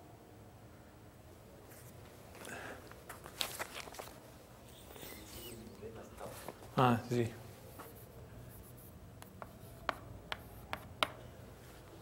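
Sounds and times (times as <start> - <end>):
chalk tapping on blackboard: 7.8 - 11.2.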